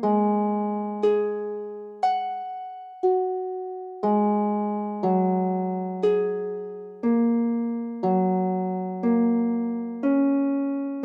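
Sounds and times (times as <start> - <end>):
piano-style keyboard chords: 0.0 - 11.0.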